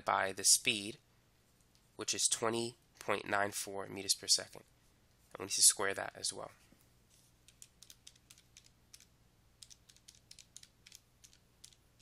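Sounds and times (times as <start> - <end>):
calculator keys clicking: 7.5 - 12.0.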